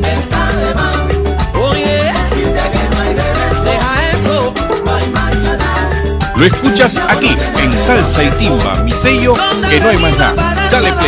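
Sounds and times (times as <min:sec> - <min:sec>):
salsa band playing: 0:00.0 - 0:11.0.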